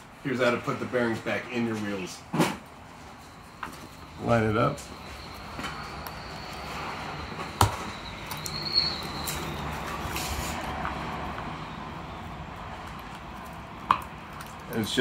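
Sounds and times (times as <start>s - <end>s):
steady background hum: 0.0s - 15.0s.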